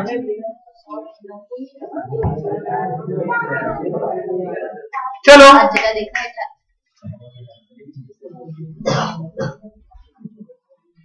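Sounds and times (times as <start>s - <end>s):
man clearing his throat: 8.8s - 9.6s.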